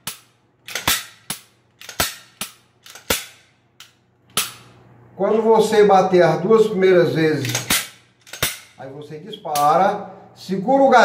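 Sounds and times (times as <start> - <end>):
pistol metallic clicks and snaps: 0.0 - 4.8, 7.4 - 8.8.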